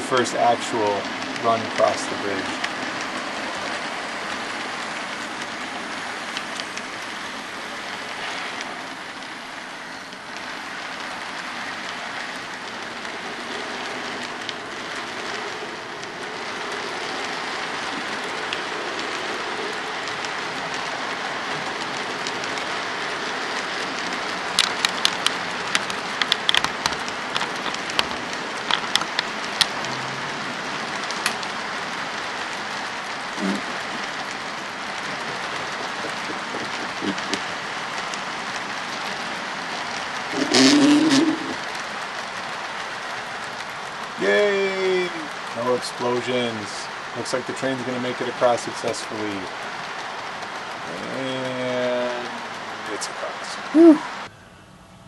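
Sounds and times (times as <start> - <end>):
model train rolling hiss: 0.0 - 24.2, 44.0 - 54.0
sharp clicks: 24.0 - 30.0.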